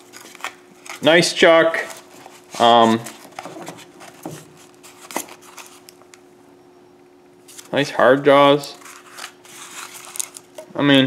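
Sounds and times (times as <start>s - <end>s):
faint steady hum: 0.0s - 11.0s
cardboard box rustling: 1.8s - 5.8s.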